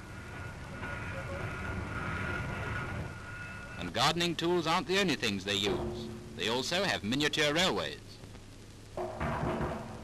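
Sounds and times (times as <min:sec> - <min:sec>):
heavy machinery engine rumble: 0:00.0 - 0:03.8
faint high whine: 0:00.0 - 0:09.1.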